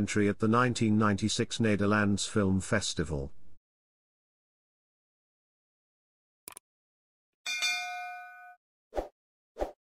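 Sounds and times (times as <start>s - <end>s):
bell-like notification ding: 7.5s - 8.6s.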